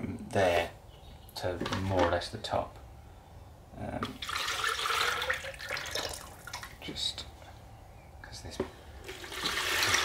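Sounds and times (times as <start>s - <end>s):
thick liquid pouring into jug: 4.1s - 6.7s, 9.0s - 10.0s.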